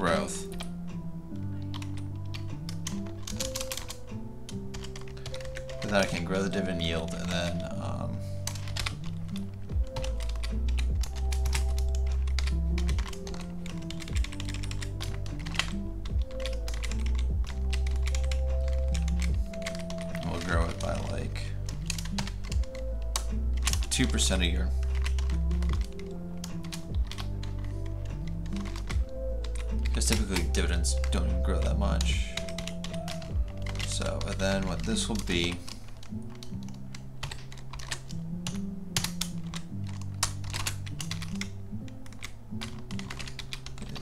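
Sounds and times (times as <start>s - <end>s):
background music with bass line: 0.0s - 44.0s
computer keyboard typing: 0.4s - 44.0s.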